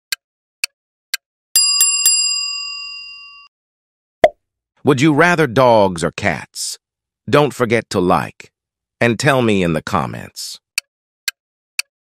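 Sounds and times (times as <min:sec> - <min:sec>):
ringing bell sound effect: 0:01.6 - 0:03.5.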